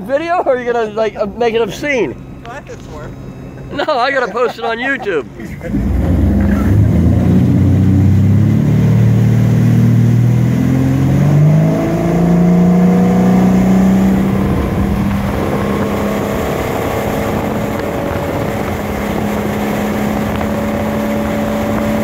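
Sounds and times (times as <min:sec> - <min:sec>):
boat engine accelerating: 0:00.0 - 0:22.0
rushing water and spray: 0:05.6 - 0:22.0.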